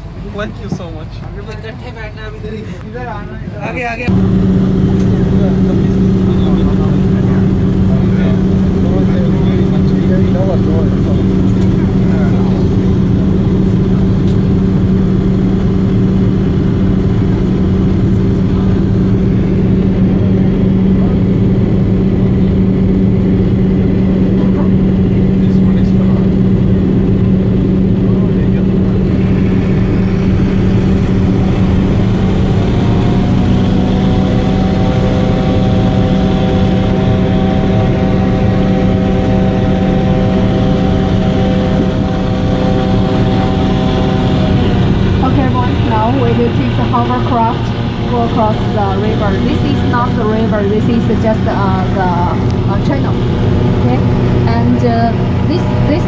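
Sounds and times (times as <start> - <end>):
high-pitched engine whine: 0.0 - 56.0
hovercraft engine drone: 0.0 - 56.0.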